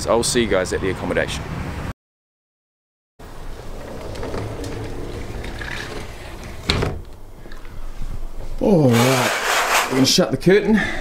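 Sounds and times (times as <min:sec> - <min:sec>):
steady background noise: 0:03.2 - 0:08.9.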